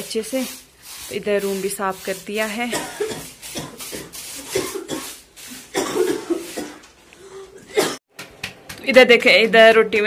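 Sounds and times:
person coughing: 2.7s - 8.0s.

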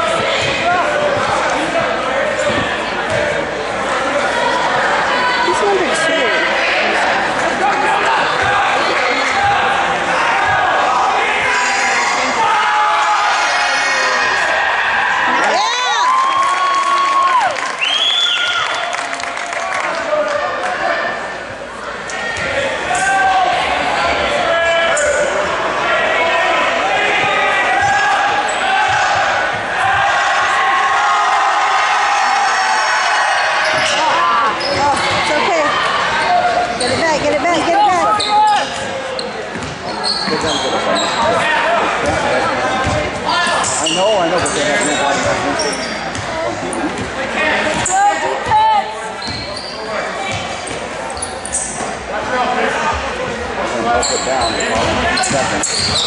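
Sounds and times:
sneakers squeaking: 0.0s - 3.5s, 33.4s - 52.1s, 52.9s - 56.0s
spectators talking and calling out: 0.0s - 56.0s.

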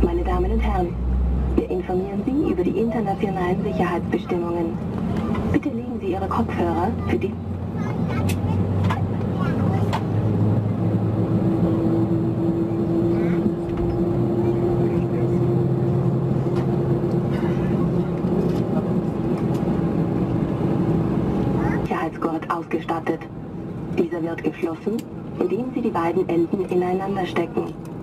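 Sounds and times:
low even rumble: 0.0s - 27.2s
jet engine whine: 0.0s - 28.0s.

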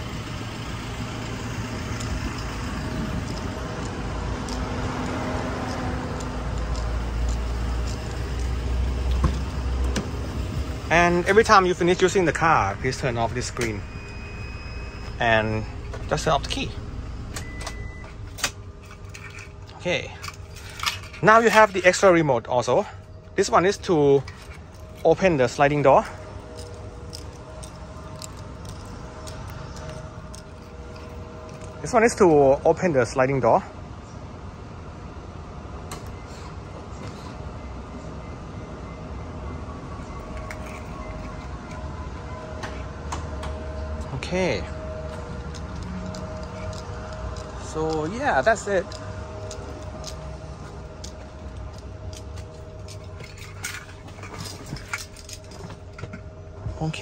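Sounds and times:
low hum: 0.0s - 33.0s, 33.6s - 57.0s.

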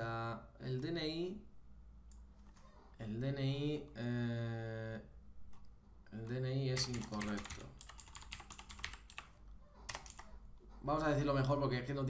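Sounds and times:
man talking: 3.0s - 5.1s, 6.1s - 7.8s, 10.8s - 12.0s
keyboard keystrokes: 6.8s - 9.3s, 9.9s - 10.4s.

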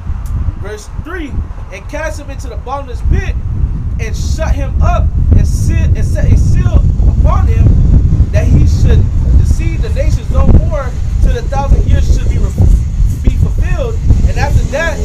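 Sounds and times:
heavy low rumble: 0.0s - 15.0s
men speaking: 0.6s - 3.4s, 4.0s - 15.0s.

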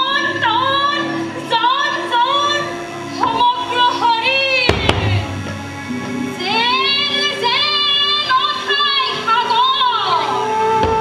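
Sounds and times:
high voice singing slow melody: 9.9s - 11.0s.

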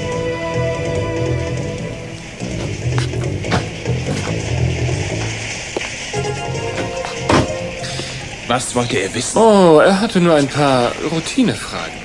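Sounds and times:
music with pulsing bass: 0.0s - 5.5s.

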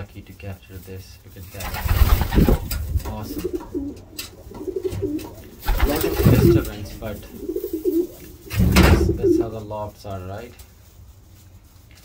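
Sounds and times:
rough bump or rustle: 1.5s - 9.6s
pigeon cooing: 1.7s - 9.6s.

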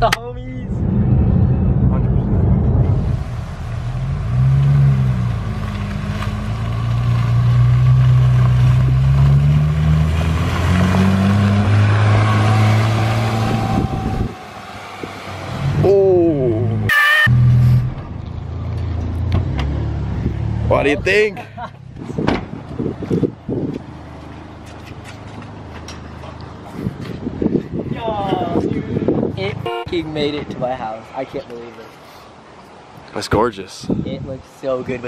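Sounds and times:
car engine at low revs: 0.0s - 24.4s
tyres hissing on wet pavement: 3.2s - 13.8s, 31.7s - 33.2s
short higher-pitched sound: 16.9s - 17.9s.

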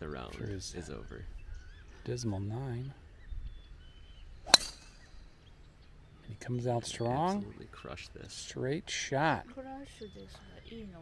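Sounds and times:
golf club striking ball: 4.4s - 5.3s.

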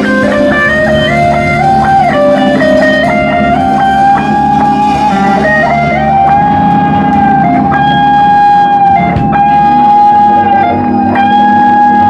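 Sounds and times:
electric guitar high note: 0.0s - 12.0s
live blues band playing: 0.0s - 12.0s.

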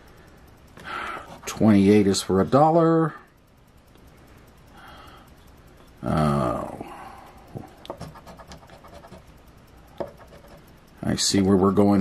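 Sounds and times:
coin scraping a scratch card: 8.0s - 9.3s.

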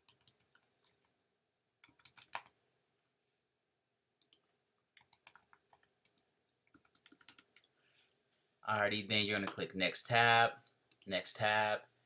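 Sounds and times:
computer keyboard and mouse clicks: 0.0s - 1.1s, 1.8s - 2.6s, 4.2s - 7.7s.

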